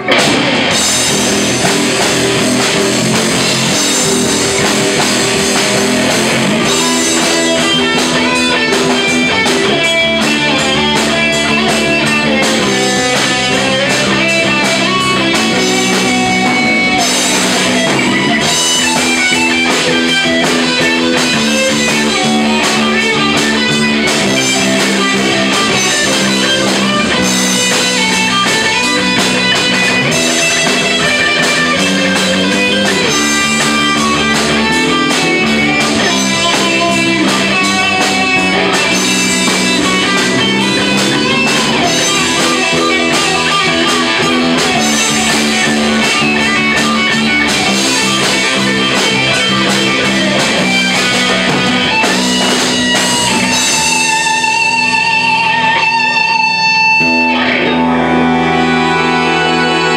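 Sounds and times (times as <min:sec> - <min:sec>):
bass guitar: 0:00.0 - 0:59.9
electric guitar: 0:00.0 - 0:59.9.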